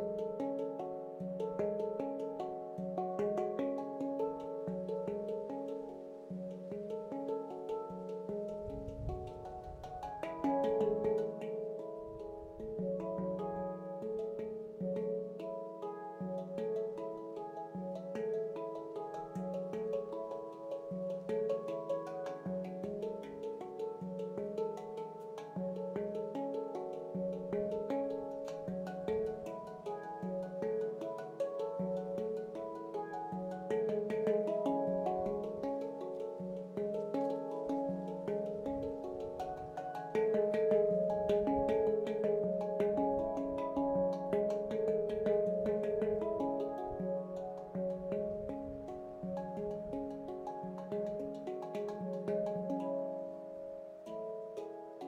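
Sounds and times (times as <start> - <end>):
handpan played by hand: 0.0 - 55.0.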